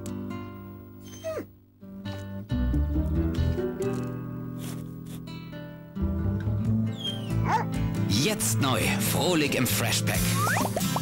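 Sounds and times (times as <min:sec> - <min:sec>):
music: 0:00.0 - 0:11.0
dog whimpering: 0:01.0 - 0:01.5, 0:06.9 - 0:07.7.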